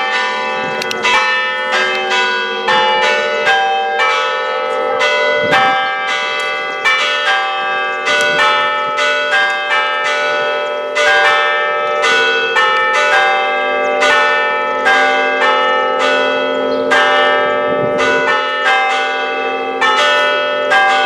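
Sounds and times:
church bells ringing a peal: 0.0 - 21.0.

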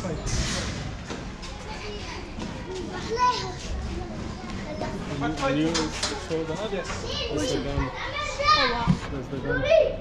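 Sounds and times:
children talking and calling out: 1.3 - 10.0.

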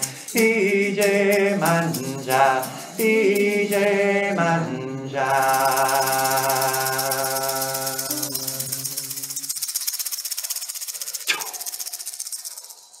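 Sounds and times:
rattle shaken rhythmically: 0.0 - 13.0.

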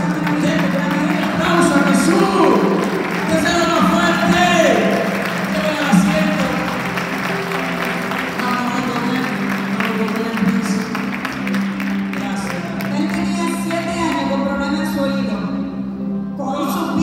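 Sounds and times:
scattered claps: 0.0 - 14.2
congregation voices: 0.0 - 17.0
worship band playing slow song: 0.0 - 17.0.

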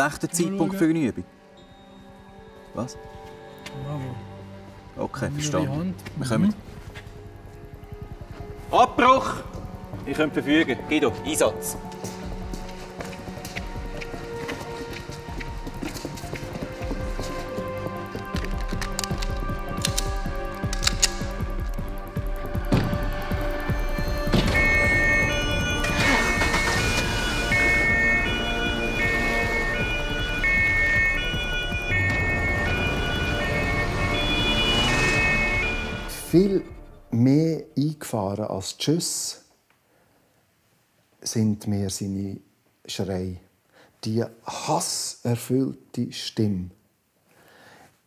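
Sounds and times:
background music: 0.0 - 39.2
two-tone police siren: 23.4 - 36.3.

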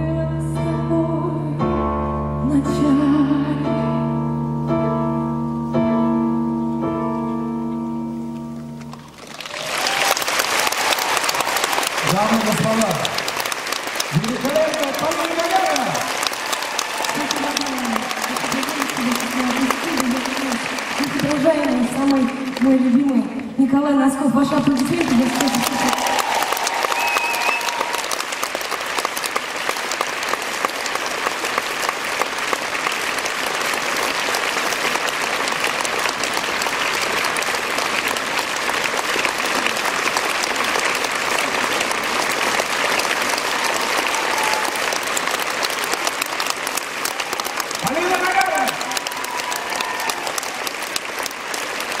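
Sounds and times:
audience applauding: 8.6 - 23.6, 24.4 - 52.0
person's voice: 17.2 - 25.9.

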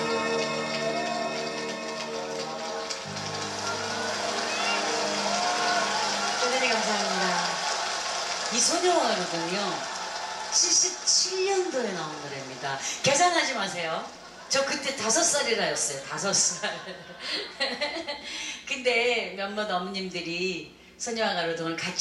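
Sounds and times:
live band chords ringing out: 0.0 - 6.4.

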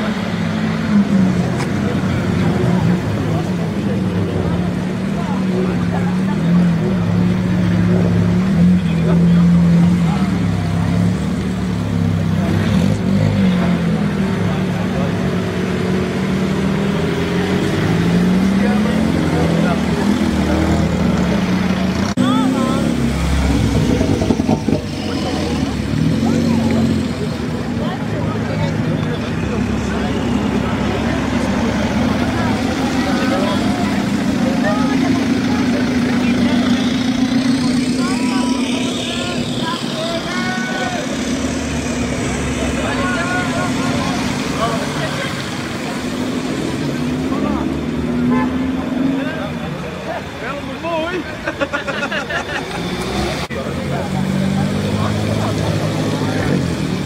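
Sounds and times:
car engines droning: 0.0 - 57.0
spectators chattering and calling: 0.0 - 57.0
tyres hissing on wet road: 22.6 - 57.0.

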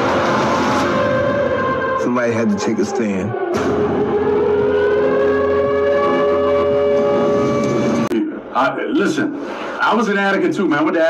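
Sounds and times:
siren wailing: 0.0 - 8.5.

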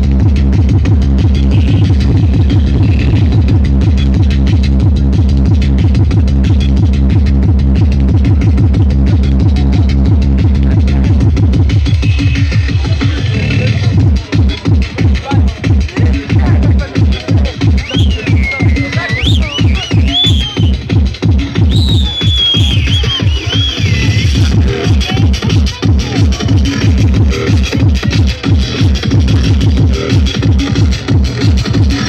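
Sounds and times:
fast electronic dance music: 0.0 - 32.0
fast kick drum beat: 0.0 - 32.0.

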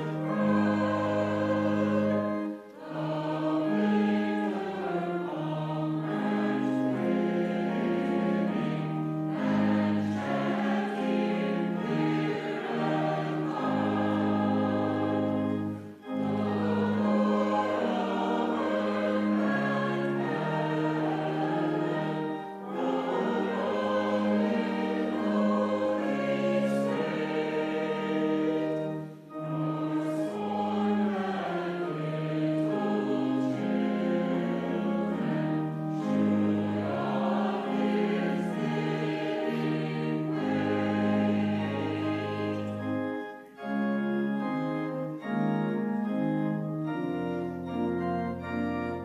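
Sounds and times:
church choir singing a hymn: 0.0 - 49.0.

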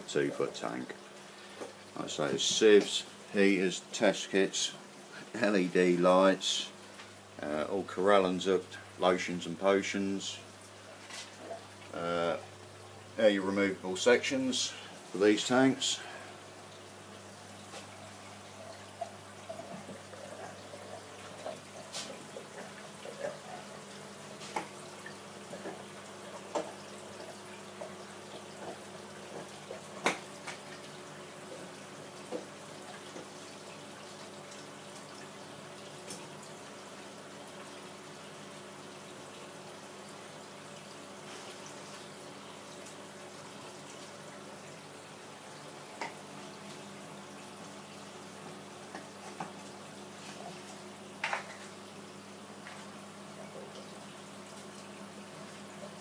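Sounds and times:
running dripping water: 0.0 - 56.0.

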